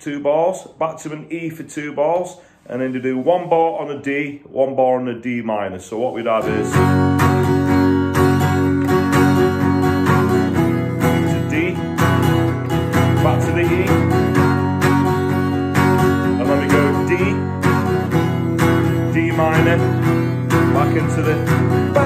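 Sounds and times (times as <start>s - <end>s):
acoustic guitar strumming chords: 6.3s - 22.0s.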